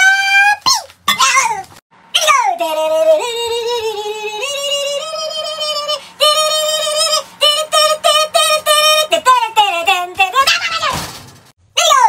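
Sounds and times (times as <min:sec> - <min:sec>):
high wordless singing voice: 0:00.0 - 0:11.1, 0:11.7 - 0:12.0.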